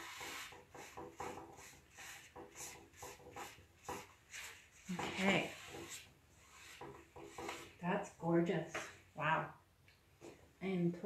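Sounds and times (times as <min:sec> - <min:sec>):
pad rubbing wooden tabletop: 0:00.0 - 0:07.9.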